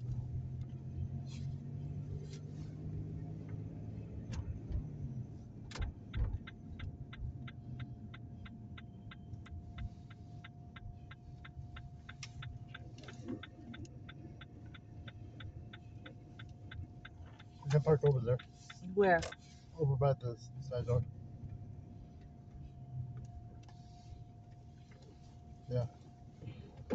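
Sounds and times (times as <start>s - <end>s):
car driving rumble: 0.0s - 26.9s
turn signal ticking: 0.0s - 26.9s.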